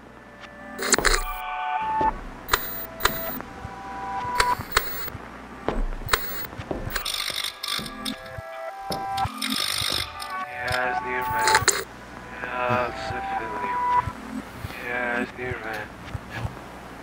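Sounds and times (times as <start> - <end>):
television static hiss: 0.0 - 1.4, 2.2 - 6.6, 10.3 - 17.0
short steady beeps: 0.8 - 1.4, 2.5 - 3.4, 4.2 - 5.1, 6.1 - 7.1, 11.2 - 11.8
sharp electronic clicks: 0.8 - 1.5, 2.4 - 3.4, 4.2 - 5.2, 6.1 - 11.9
held electronic tones: 0.8 - 5.2, 5.8 - 11.9.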